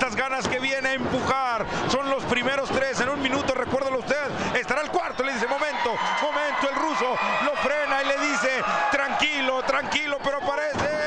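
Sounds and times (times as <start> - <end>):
man commentating: 0.0 - 11.0.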